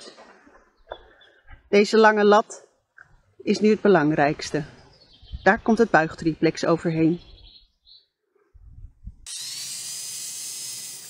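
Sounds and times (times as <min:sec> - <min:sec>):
angle grinder cutting wood: 0:09.3 - 0:11.0.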